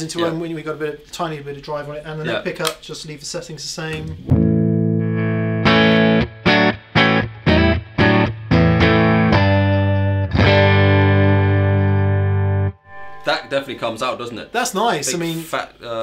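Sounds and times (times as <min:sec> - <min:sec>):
electric guitar chords: 0:04.3 - 0:14.1.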